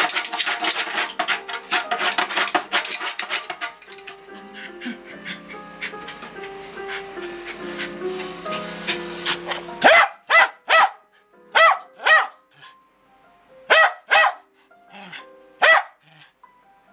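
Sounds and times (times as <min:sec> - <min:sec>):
music with held notes: 0:00.0 - 0:10.0, 0:14.4 - 0:16.9
dog barking loudly: 0:09.3 - 0:11.0, 0:11.6 - 0:12.4, 0:13.7 - 0:14.4, 0:15.6 - 0:16.0.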